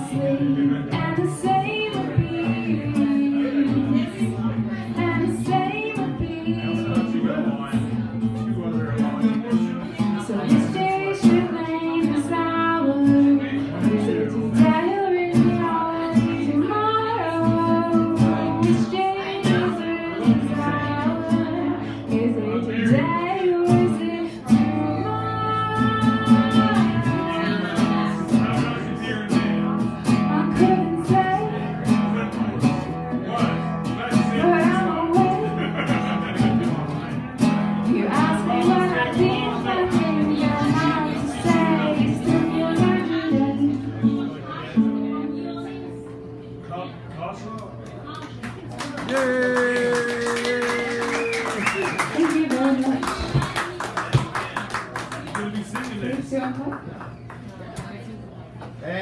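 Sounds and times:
woman singing: 0.0 - 7.1, 10.2 - 28.3, 30.1 - 32.0, 34.3 - 35.6, 37.8 - 45.9
acoustic guitar strumming: 0.0 - 47.2.

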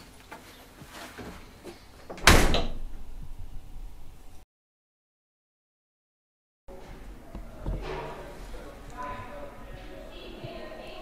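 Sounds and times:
wooden door slamming: 2.1 - 3.4.

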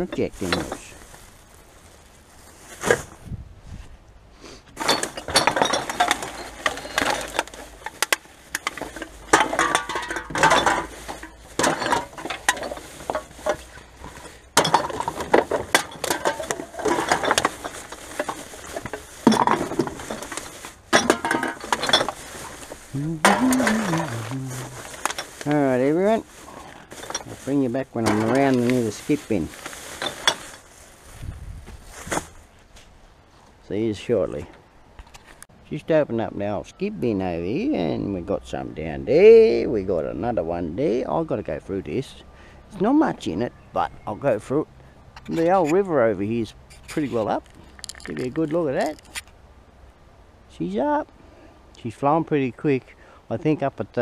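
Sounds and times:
plastic bags rustling: 0.0 - 3.3, 4.8 - 32.6
glass bottles and cans clinking: 4.8 - 22.6, 26.8 - 30.6, 47.4 - 49.1.

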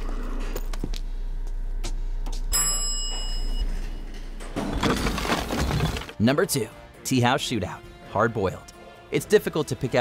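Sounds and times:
low steady hum: 0.0 - 6.0
elevator bell chiming: 2.5 - 4.5.

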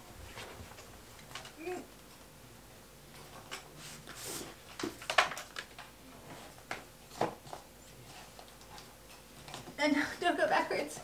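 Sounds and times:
books knocking and scraping on shelf: 6.2 - 7.6.

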